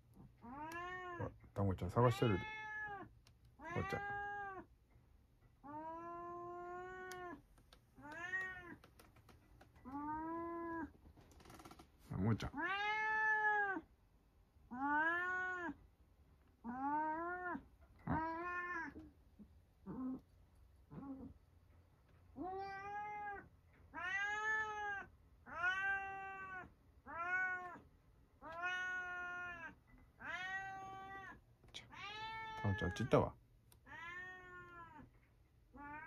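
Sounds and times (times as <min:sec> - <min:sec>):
cat meowing: 0:00.4 - 0:01.4, 0:02.0 - 0:04.7, 0:05.6 - 0:07.4, 0:08.0 - 0:08.9, 0:09.8 - 0:11.0, 0:12.5 - 0:13.9, 0:14.7 - 0:15.8, 0:16.6 - 0:19.1, 0:22.4 - 0:27.8, 0:28.4 - 0:33.2, 0:33.8 - 0:35.1, 0:35.7 - 0:36.0.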